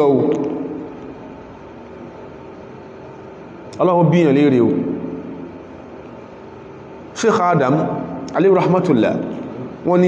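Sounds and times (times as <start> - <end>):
room hum and hiss: 0.0 - 10.0
man speaking: 7.2 - 10.0.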